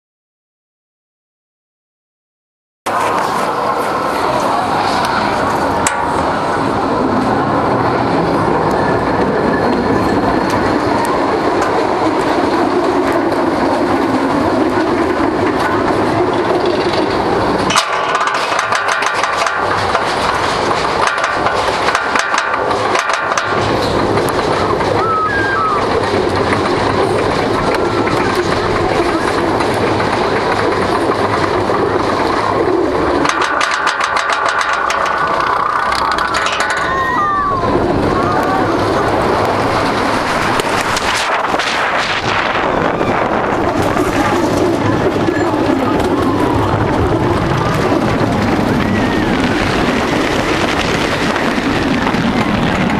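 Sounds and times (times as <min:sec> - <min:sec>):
roller coaster wheels rumbling: 0:02.9 - 0:52.9
anti-rollback dogs clicking: 0:08.6 - 0:52.9
lift chain clattering: 0:25.8 - 0:37.2.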